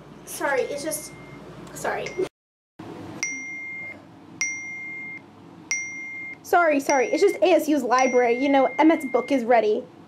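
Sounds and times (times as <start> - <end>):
phone high electronic beep: 3.2 - 9.4.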